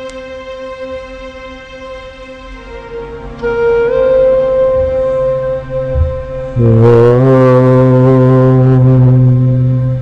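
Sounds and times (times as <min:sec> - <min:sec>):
man chanting held om: 0:01.4 - 0:10.0.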